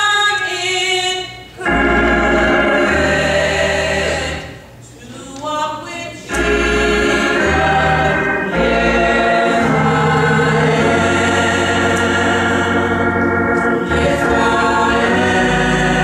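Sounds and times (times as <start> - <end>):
gospel choir singing: 0.0 - 16.0
organ accompaniment: 1.4 - 4.9, 6.2 - 16.0.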